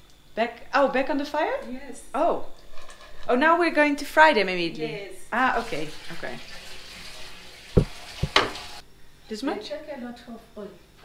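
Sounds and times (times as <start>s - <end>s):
food sizzling in a pan: 5.3s - 8.8s.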